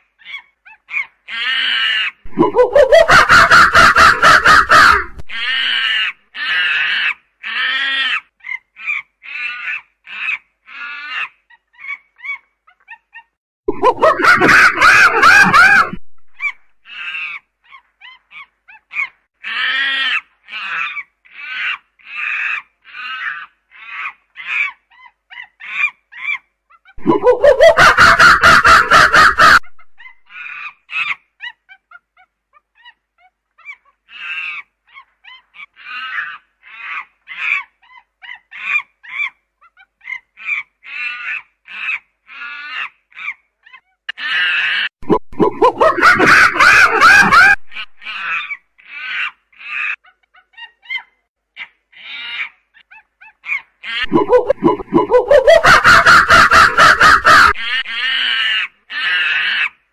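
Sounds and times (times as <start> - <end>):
primate loud scream: 1.3 - 8.2, 14.0 - 17.4.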